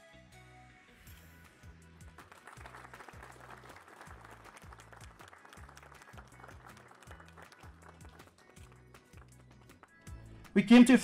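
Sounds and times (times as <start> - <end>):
audience applause: 2.2 - 10.0.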